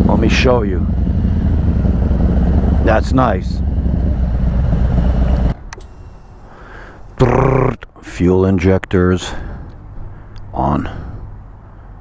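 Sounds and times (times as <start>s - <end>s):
man speaking: 0.0s - 1.0s, 2.8s - 3.6s, 7.2s - 9.4s, 10.5s - 11.1s
motorcycle engine idling: 0.0s - 7.4s.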